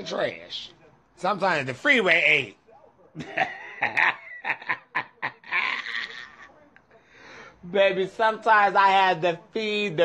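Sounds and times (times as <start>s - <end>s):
man laughing: 3.2s - 6.6s.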